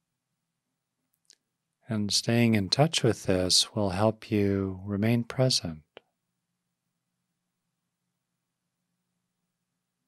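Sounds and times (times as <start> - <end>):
man's voice: 1.9 - 6.0.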